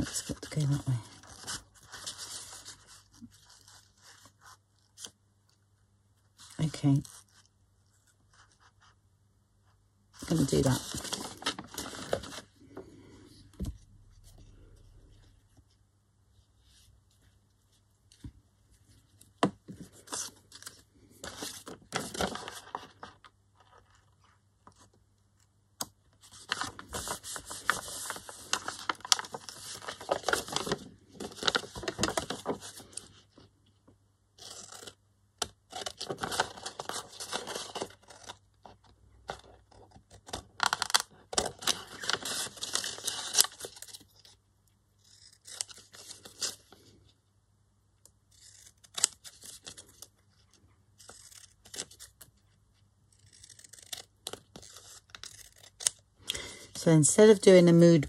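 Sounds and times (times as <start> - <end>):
paper rustling: 19.0 - 24.9, 26.2 - 33.1, 40.6 - 44.0
scissors cutting paper: 45.0 - 46.6, 48.3 - 50.1, 51.0 - 52.3, 53.1 - 56.0.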